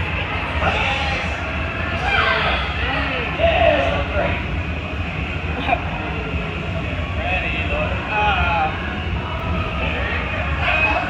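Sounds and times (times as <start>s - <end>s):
ride vehicle rumbling on track: 0.0s - 11.0s.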